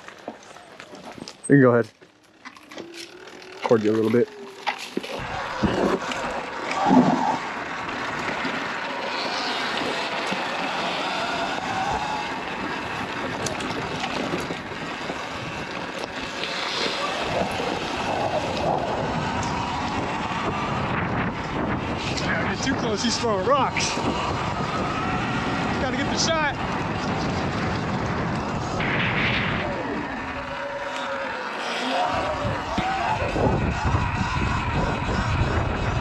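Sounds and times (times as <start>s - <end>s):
tyres on gravel: 0.0s - 36.0s
wind rushing over camera: 5.2s - 31.4s, 32.1s - 36.0s.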